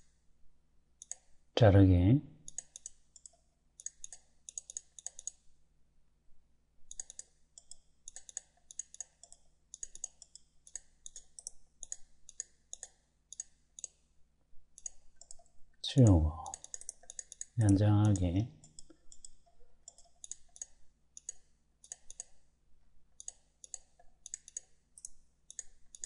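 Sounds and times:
computer mouse clicking: 0:01.0 - 0:01.3, 0:02.5 - 0:05.5, 0:06.9 - 0:14.0, 0:14.8 - 0:15.6, 0:16.4 - 0:22.4, 0:23.2 - 0:26.0.

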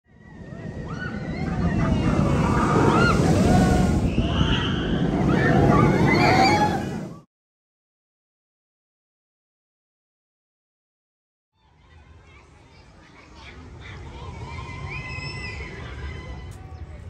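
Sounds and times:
roller coaster rumbling on track: 0:00.1 - 0:07.2
riders screaming: 0:00.3 - 0:07.2.

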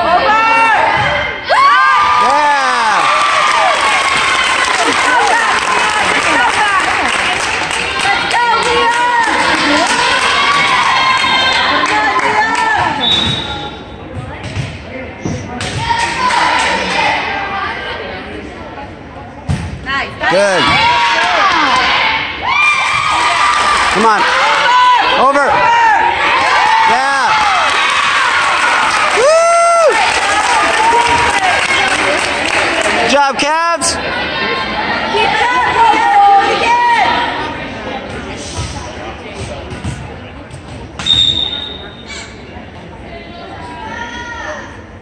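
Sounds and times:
crowd cheering and shouting: 0:00.0 - 0:13.0, 0:20.2 - 0:37.6
murmur of spectators: 0:00.0 - 0:45.0
referee's whistle blast: 0:13.0 - 0:13.8, 0:41.0 - 0:42.3.

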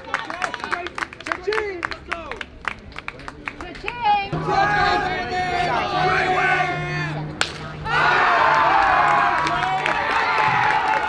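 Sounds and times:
crowd cheering: 0:00.0 - 0:11.0
people shouting: 0:04.4 - 0:11.0
bat hitting baseball: 0:07.4 - 0:07.7.

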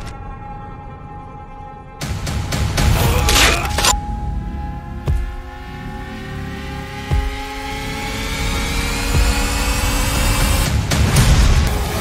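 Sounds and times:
rising drone of stacked tones: 0:03.9 - 0:10.7
loud cinematic hit: 0:10.6 - 0:12.0.

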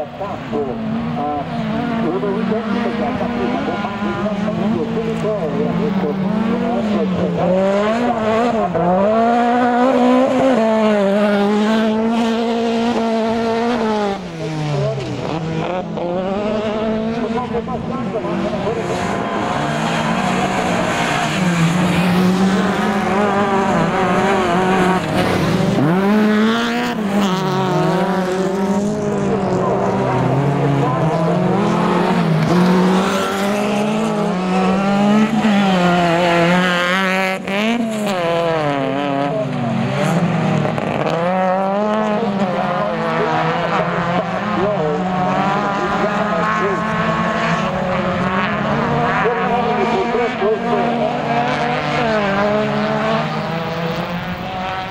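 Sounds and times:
race car engines revving: 0:00.0 - 0:54.9.

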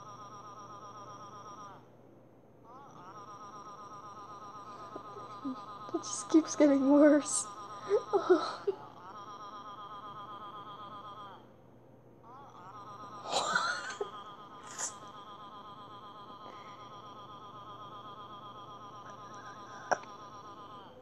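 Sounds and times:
synthetic voice repeating a sound: 0:04.8 - 0:08.8.

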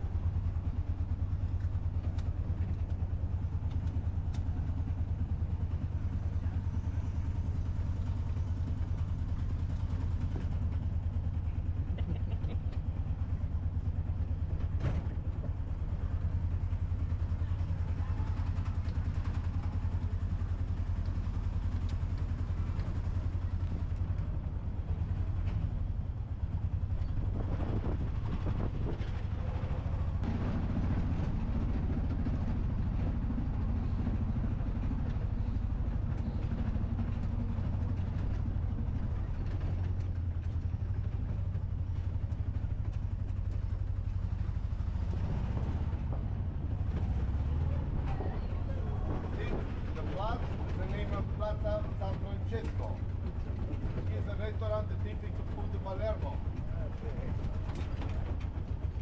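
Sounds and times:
small engine droning: 0:00.0 - 0:59.0.

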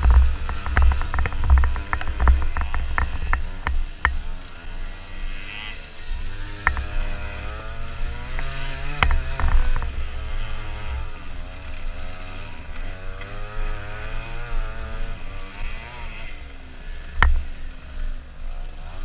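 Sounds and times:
knocks from bumps: 0:00.0 - 0:04.2
scooter engine revving: 0:00.0 - 0:19.0.

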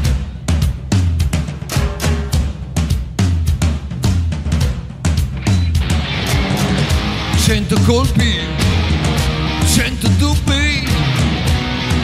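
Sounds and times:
bass guitar: 0:00.0 - 0:12.0
drum kit beat: 0:00.0 - 0:12.0
electric guitar: 0:05.4 - 0:12.0.

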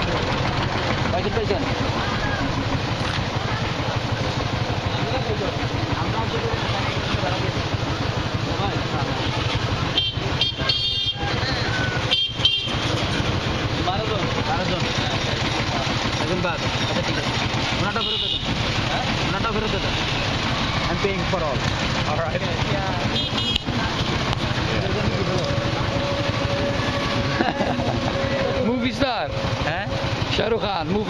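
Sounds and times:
motor traffic drone: 0:00.0 - 0:31.0
vehicle horn toots: 0:09.4 - 0:11.4, 0:12.0 - 0:12.9, 0:17.9 - 0:18.6, 0:23.0 - 0:23.7.

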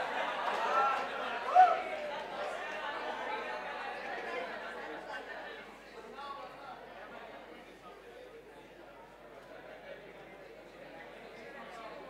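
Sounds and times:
class chattering: 0:00.0 - 0:05.7.

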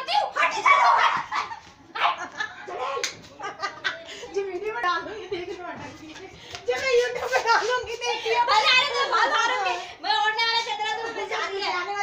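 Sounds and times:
girls and women talking: 0:00.0 - 0:12.0.

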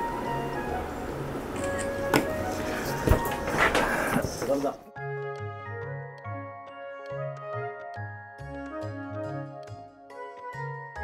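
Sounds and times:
light music with bass line: 0:00.0 - 0:11.0.

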